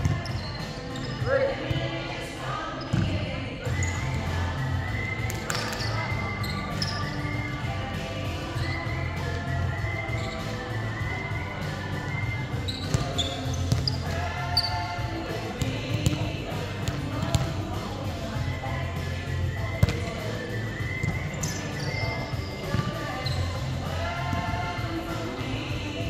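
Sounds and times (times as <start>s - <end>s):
music: 0.0s - 26.0s
voices: 0.0s - 26.0s.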